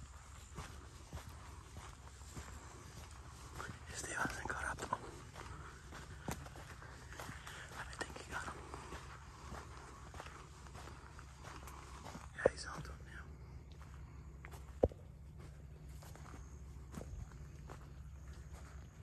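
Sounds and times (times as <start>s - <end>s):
footsteps on sandy dirt: 0.0s - 19.0s
whispering voices: 3.5s - 5.5s, 7.2s - 9.0s, 12.1s - 13.4s.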